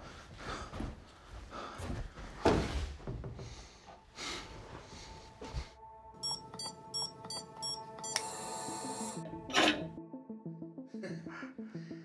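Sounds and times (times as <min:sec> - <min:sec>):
film score music: 0:03.2 - 0:12.0
keypad beeping: 0:06.2 - 0:08.4.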